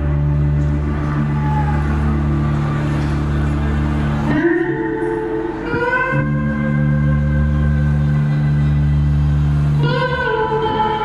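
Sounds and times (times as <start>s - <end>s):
band holding low chord: 0.0s - 11.0s.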